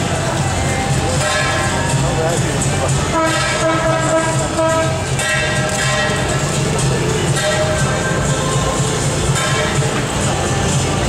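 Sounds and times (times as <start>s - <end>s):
reedy wind instrument: 0.0s - 11.0s
steady low beat: 0.0s - 11.0s.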